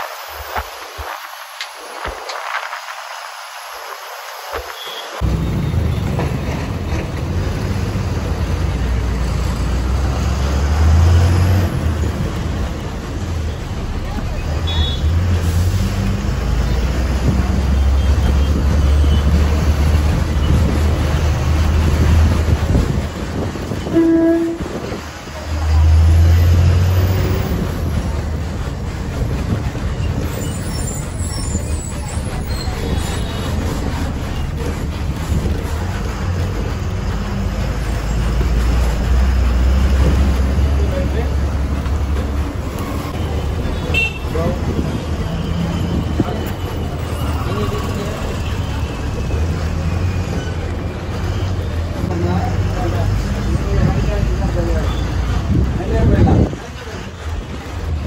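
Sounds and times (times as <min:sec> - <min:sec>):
bus engine rumble: 0:00.0 - 0:58.0
road and wind noise: 0:00.0 - 0:58.0
bus horn toot: 0:14.6 - 0:15.2, 0:23.8 - 0:24.9, 0:43.8 - 0:44.4.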